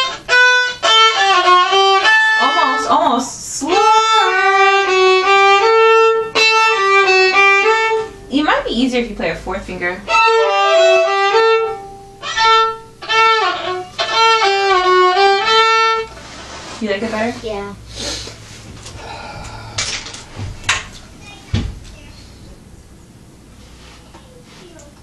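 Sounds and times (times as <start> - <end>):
two violins playing slow melody: 0.0 - 2.8, 3.7 - 8.1, 10.1 - 16.2
low thump: 20.3 - 20.8, 21.5 - 21.8.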